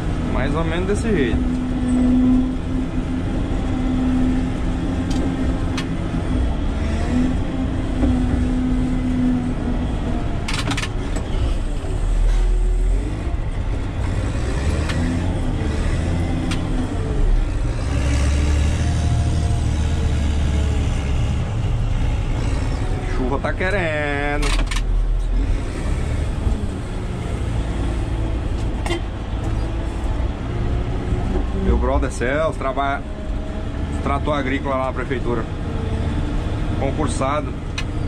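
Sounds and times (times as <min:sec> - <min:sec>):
diesel engine rumble: 0:00.0 - 0:38.0.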